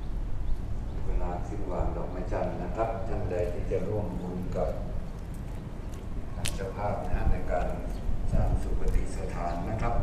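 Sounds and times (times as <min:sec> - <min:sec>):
steady low rumble: 0:00.0 - 0:10.0
people talking: 0:01.0 - 0:04.9, 0:06.4 - 0:10.0.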